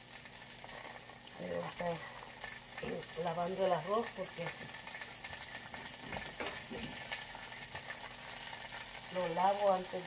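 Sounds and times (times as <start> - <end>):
onion sizzling in oil: 0.0 - 10.0.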